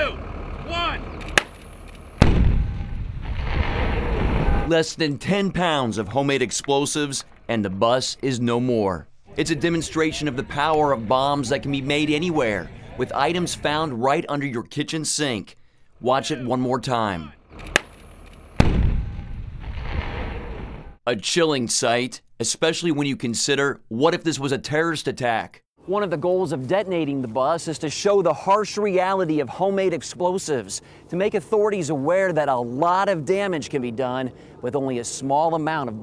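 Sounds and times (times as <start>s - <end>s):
loud explosion blast: 2.2s - 4.7s, 18.6s - 21.0s
low rumble: 2.2s - 4.7s.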